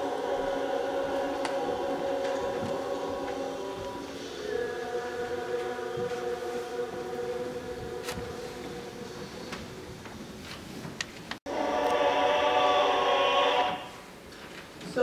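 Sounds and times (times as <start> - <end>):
choir singing through phone speaker: 0.0 - 9.9, 11.5 - 14.1.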